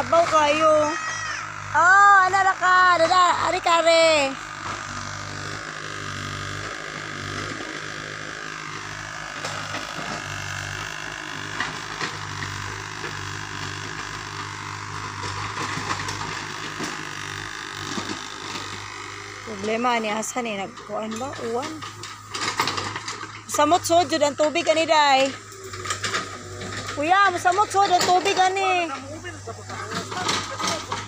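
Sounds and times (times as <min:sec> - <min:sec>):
diesel engine droning: 0:00.0 - 0:31.0.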